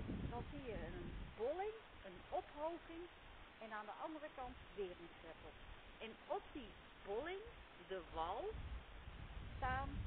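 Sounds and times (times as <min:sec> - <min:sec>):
woman speaking: 0:00.3 - 0:08.6, 0:09.6 - 0:10.0.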